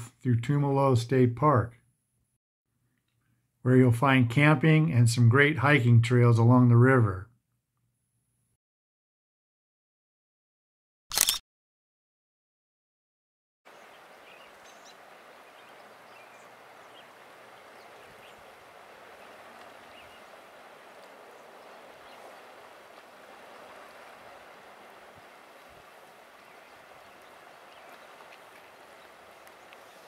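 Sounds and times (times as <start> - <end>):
water rushing over rocks: 13.7 - 30.0.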